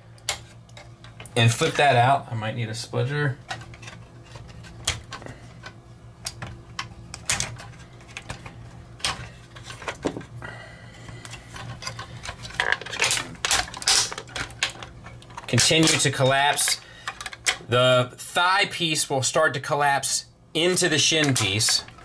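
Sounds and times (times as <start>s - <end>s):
plastic parts knocking: 3.5s - 10.3s, 11.6s - 17.6s.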